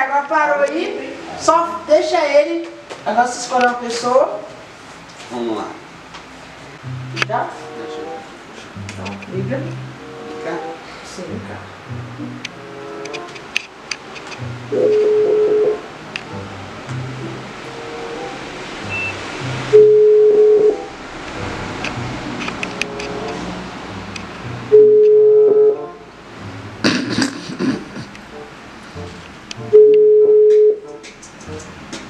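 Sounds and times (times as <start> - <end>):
background music: 6.4 - 32.0
telephone ringback beep: 14.8 - 15.8, 24.7 - 25.8, 29.7 - 30.8.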